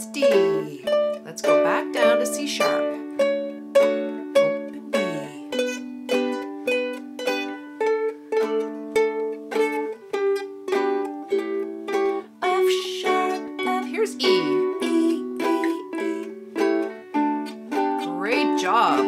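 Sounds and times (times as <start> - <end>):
ukulele plucking single notes: 0.0 - 19.0.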